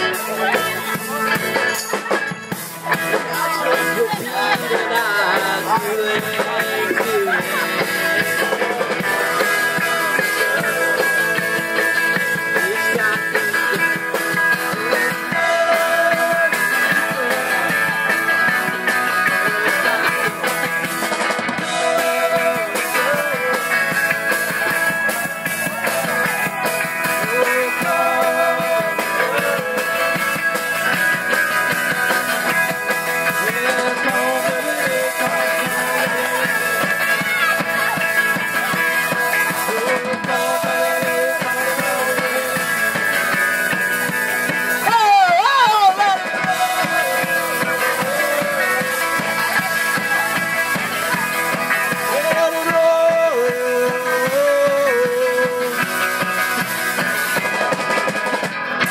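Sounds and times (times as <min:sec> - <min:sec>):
drum kit beat: 0:00.0 - 0:58.9
electric guitars: 0:00.0 - 0:58.9.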